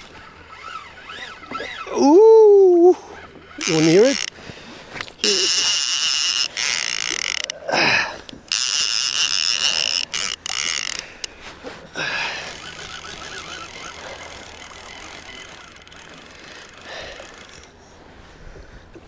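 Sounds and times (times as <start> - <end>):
fishing reel drag buzzing: 0.0 - 2.2, 3.2 - 11.4, 12.0 - 17.8.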